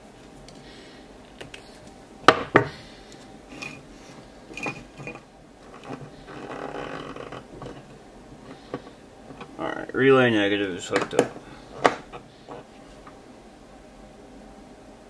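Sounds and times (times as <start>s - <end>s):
soft rustling of wire handling: 3.0s - 10.0s.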